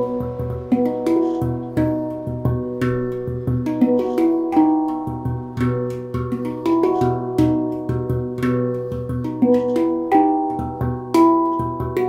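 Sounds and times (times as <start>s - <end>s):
deep low handpan note: 0.0s - 12.0s
handpan notes ringing: 0.0s - 12.0s.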